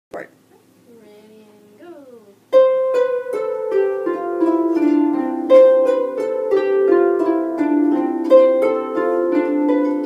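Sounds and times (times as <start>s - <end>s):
harps plucking notes: 2.5s - 10.0s.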